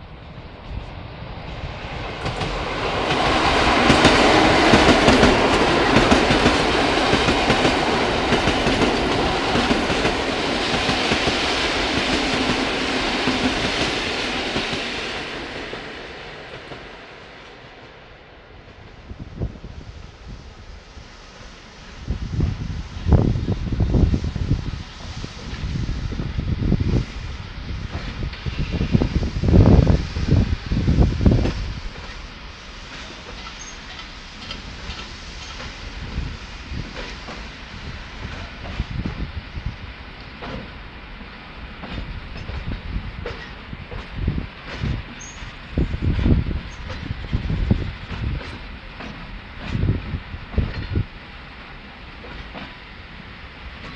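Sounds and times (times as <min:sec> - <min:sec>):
train wheels clacking on rails: 0:00.6 - 0:19.3, 0:23.2 - 0:53.9.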